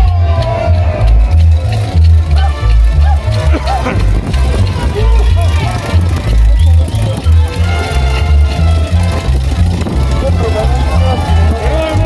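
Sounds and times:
heavy pulsing bass beat: 0.0 - 12.0
live carnival dance music: 0.0 - 12.0.

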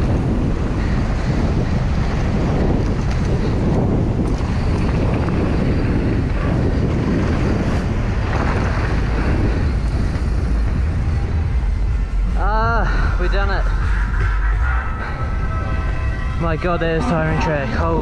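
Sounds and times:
bike tyres rolling over dirt: 0.0 - 13.1
wind buffeting microphone: 0.0 - 18.0.

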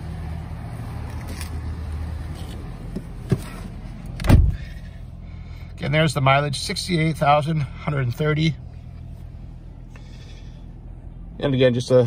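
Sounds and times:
car engine idling: 0.0 - 12.0
car door shutting: 2.9 - 4.8.

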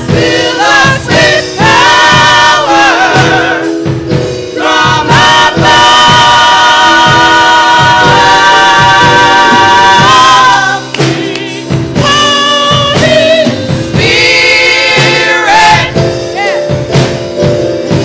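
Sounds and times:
choir singing gospel: 0.0 - 18.0
instrumental accompaniment: 0.0 - 18.0
short percussive hits: 4.6 - 13.4.

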